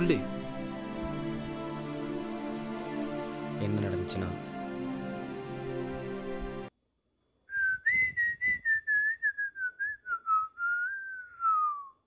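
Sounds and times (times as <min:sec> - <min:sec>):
background music: 0:00.0 - 0:06.7
person whistling a tune: 0:07.5 - 0:12.0.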